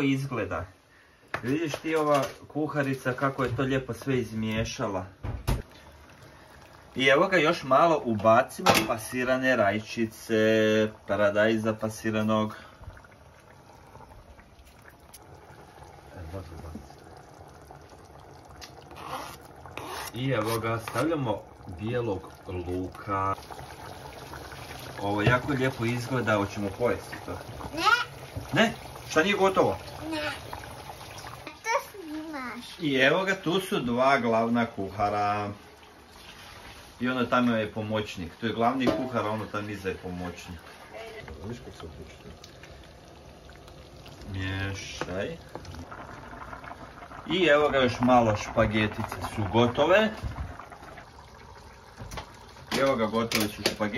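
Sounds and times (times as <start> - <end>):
sauce bubbling in a pot: 0.0 - 53.9
kitchen background noise: 1.2 - 6.0, 6.8 - 17.7, 18.3 - 42.9, 43.6 - 53.9.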